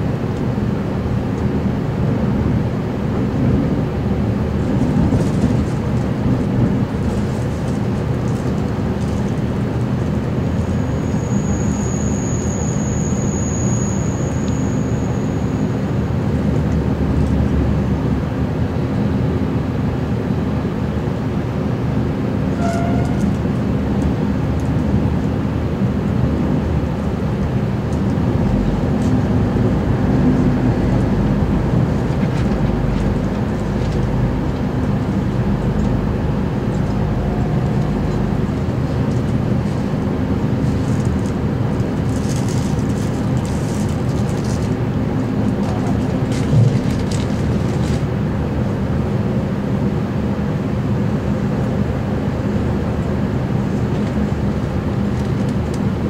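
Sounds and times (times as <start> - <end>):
train engine and wheel rumble: 0.0 - 56.0
high-pitched squeal: 10.9 - 15.8.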